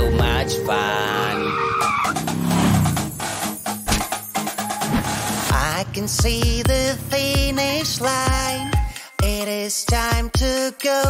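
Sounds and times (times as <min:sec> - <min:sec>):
children's song music: 0:00.0 - 0:11.0
cartoon toy car engine revving: 0:01.6 - 0:03.2.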